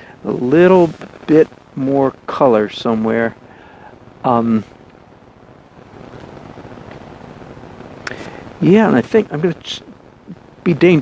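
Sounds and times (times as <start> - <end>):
low rushing background noise: 0.0 - 11.0.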